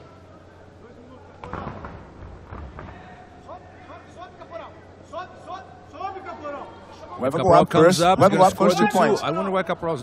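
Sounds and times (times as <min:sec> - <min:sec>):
people shouting: 0:08.2 - 0:09.2.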